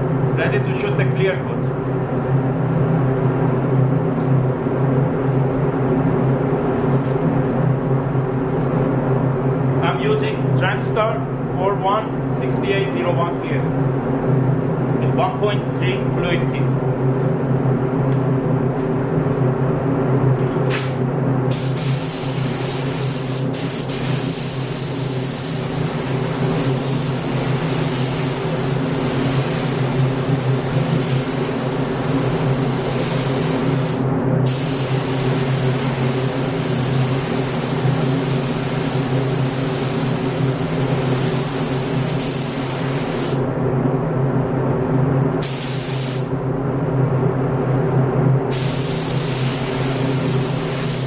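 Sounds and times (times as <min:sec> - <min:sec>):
steady low hum: 0:00.0 - 0:51.0
paint spray gun hissing: 0:20.7 - 0:43.4, 0:45.4 - 0:46.3, 0:48.5 - 0:51.0.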